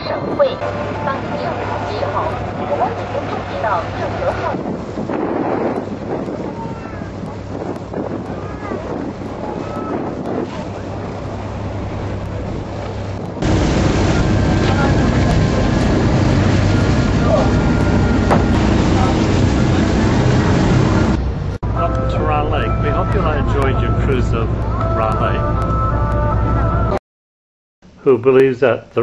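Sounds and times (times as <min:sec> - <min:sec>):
boat engine humming: 0:00.0 - 0:27.0
wind buffeting microphone: 0:00.0 - 0:27.0.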